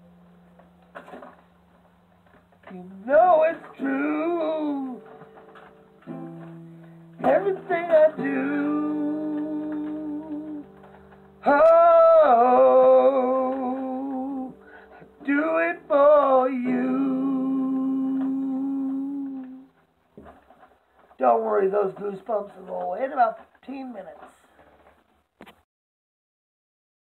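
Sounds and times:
acoustic guitar strummed chords: 0.0s - 19.8s
man humming: 15.2s - 19.7s.

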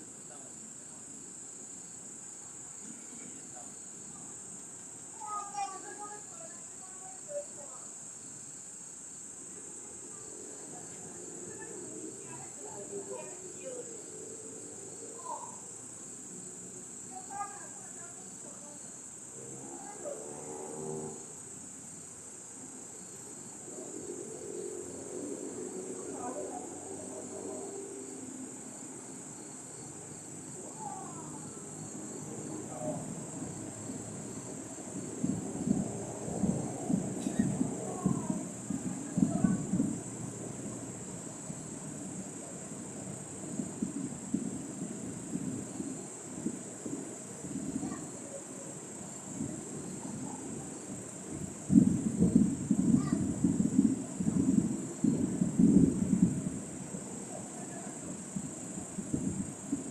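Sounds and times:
crickets chirping: 0.0s - 59.9s
faint voices talking: 2.2s - 8.1s, 9.3s - 21.4s, 23.6s - 55.1s, 57.0s - 59.4s.

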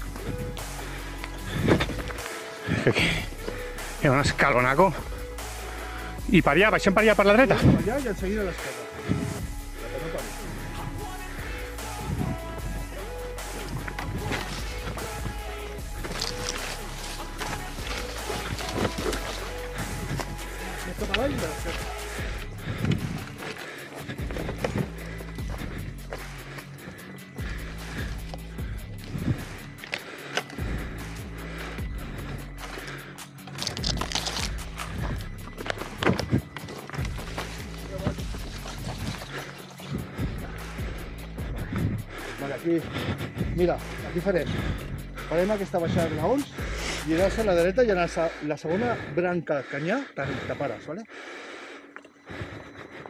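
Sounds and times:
background music: 0.0s - 53.0s.

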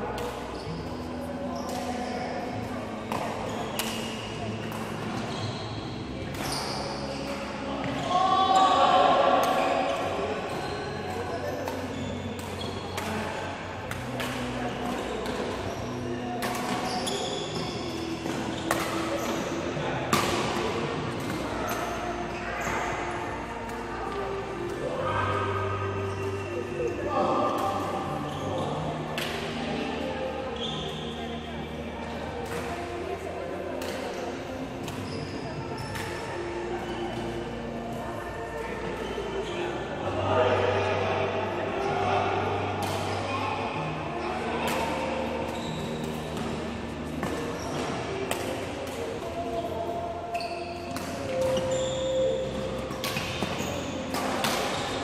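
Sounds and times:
people talking: 6.1s - 55.0s
rackets striking shuttlecocks: 44.6s - 49.3s, 50.8s - 55.0s.

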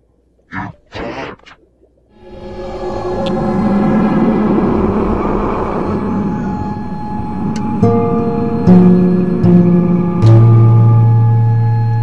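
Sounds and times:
faint steady tones: 1.7s - 12.0s
loud distorted rumbling noise: 2.2s - 12.0s
sustained musical notes: 2.2s - 12.0s.

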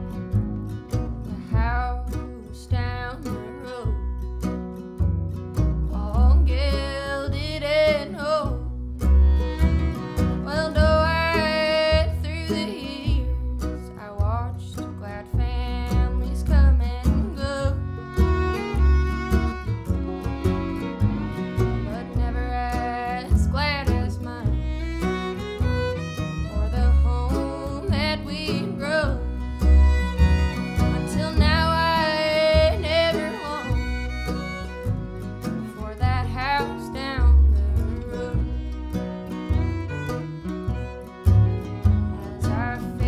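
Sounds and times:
bluegrass string band playing: 0.0s - 43.0s
fiddle melody: 0.0s - 43.0s.

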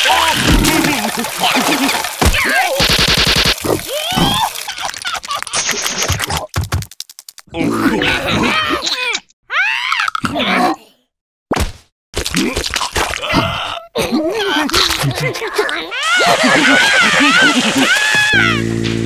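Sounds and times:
cartoon character vocal noises: 3.6s - 4.8s, 7.5s - 11.1s, 12.4s - 16.3s
comic sound effects: 17.2s - 18.8s.

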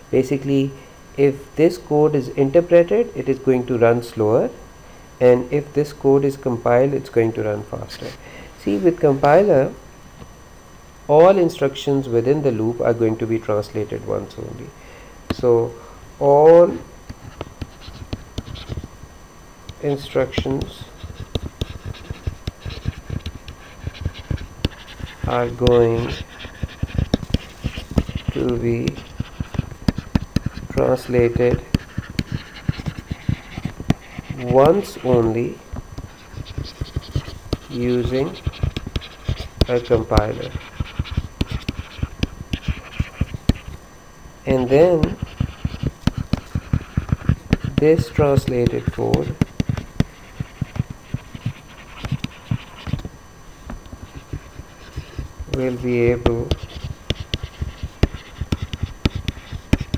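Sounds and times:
stylus tapping on pen tablet: 17.1s - 18.9s, 20.3s - 35.2s, 36.0s - 37.8s, 38.4s - 43.7s, 45.0s - 53.1s, 54.0s - 59.9s
stylus tapping on tablet: 45.0s - 53.1s, 54.0s - 59.9s.

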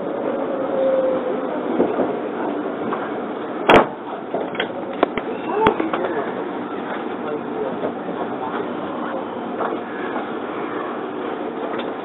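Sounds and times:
train cabin running noise: 0.0s - 12.0s
wheels clacking on track: 1.7s - 12.0s.

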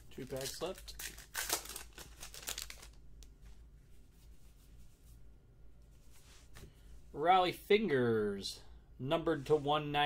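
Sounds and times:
faint handling of cards: 0.0s - 7.2s
plastic wrapper crinkling and tearing: 0.1s - 3.0s.

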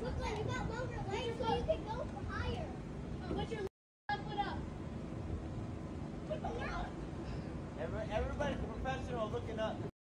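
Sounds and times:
children calling and shouting: 0.0s - 4.8s, 6.2s - 7.2s
low steady background noise: 0.0s - 9.9s.

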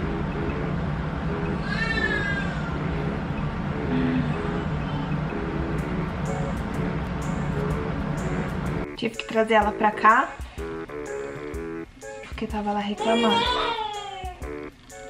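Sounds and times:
lounge music: 0.0s - 15.0s
baby whimpering: 13.0s - 14.4s.

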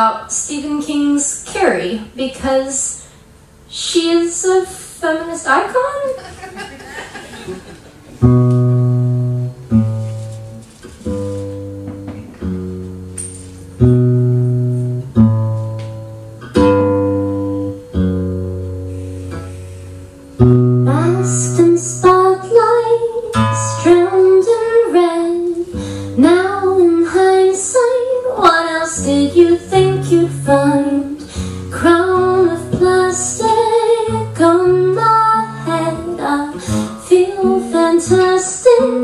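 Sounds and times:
woman singing: 3.7s - 6.2s, 20.8s - 39.0s
acoustic guitar strummed chords: 8.0s - 39.0s.

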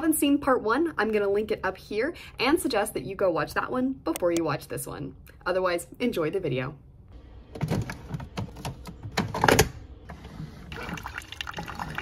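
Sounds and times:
coffee pouring into mug: 10.7s - 12.0s.

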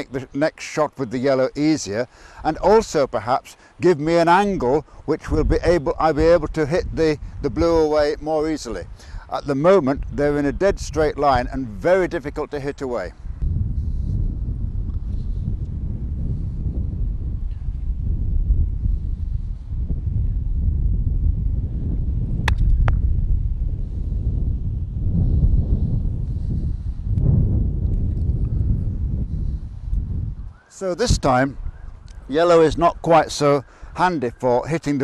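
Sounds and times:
wind buffeting microphone: 1.2s - 35.0s.

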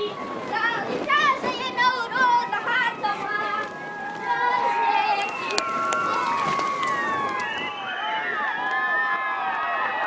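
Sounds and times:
children calling and shouting: 0.0s - 7.7s.

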